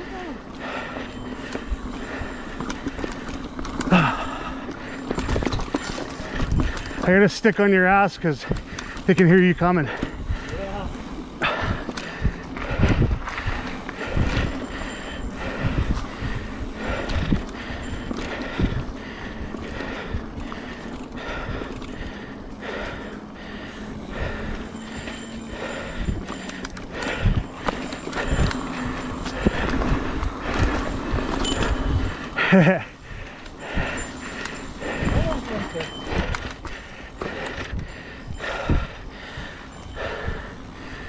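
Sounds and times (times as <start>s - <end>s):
bike tyres rolling on dirt trail: 0.0s - 41.0s
steady low hum: 0.0s - 41.0s.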